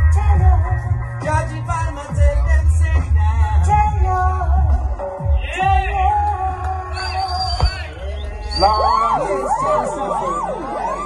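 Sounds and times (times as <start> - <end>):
deep bass: 0.0 - 11.0
dub siren swooping tone: 6.9 - 11.0.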